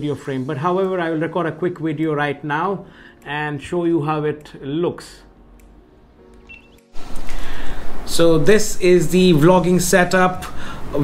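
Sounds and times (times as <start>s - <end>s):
faint electronic beep: 6.4s - 7.0s.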